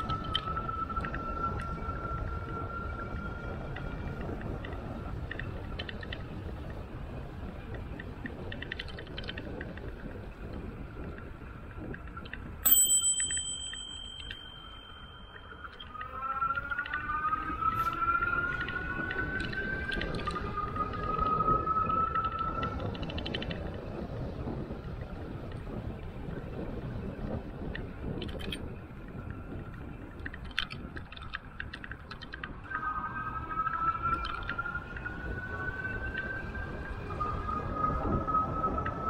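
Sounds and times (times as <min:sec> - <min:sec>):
wind noise: 0:00.0 - 0:39.0
bicycle bell ringing: 0:12.6 - 0:16.0.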